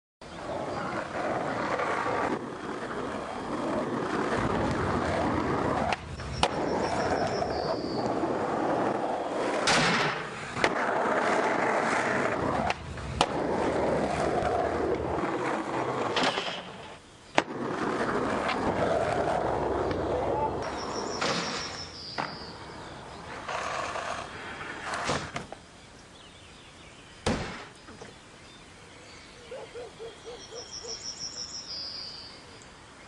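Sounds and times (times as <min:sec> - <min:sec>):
skateboard wheels rolling on asphalt: 0:00.2 - 0:26.5
skateboard clacks: 0:04.3 - 0:08.2, 0:09.6 - 0:13.5.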